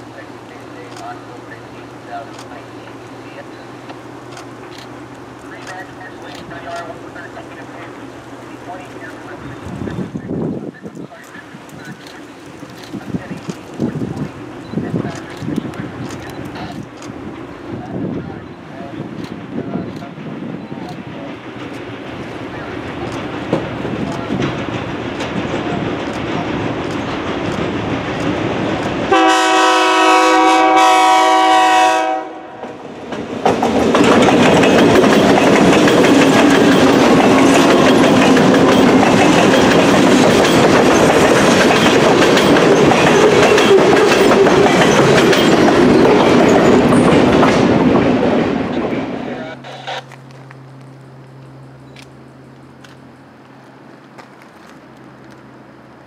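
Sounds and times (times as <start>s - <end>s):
freight train passing: 0.0s - 56.0s
train air horn: 29.1s - 32.8s.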